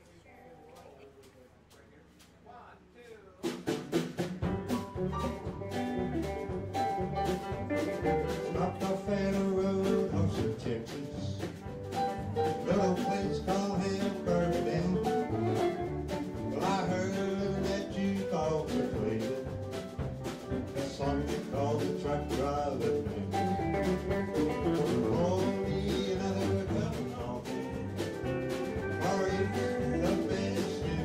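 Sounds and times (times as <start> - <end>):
country band playing: 3.4 - 31.0
man singing: 8.0 - 11.7, 12.4 - 19.8, 20.7 - 31.0.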